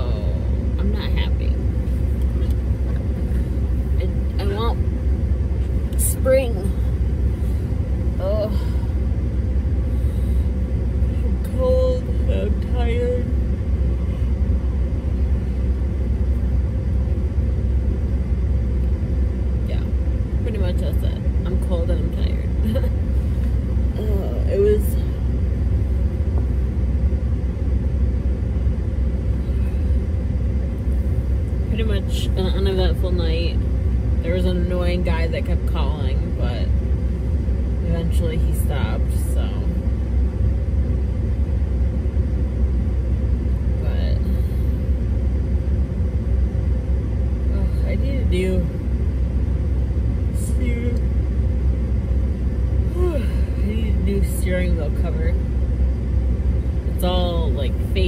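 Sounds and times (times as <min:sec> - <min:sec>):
car cabin rumble: 0:00.0 - 0:58.0.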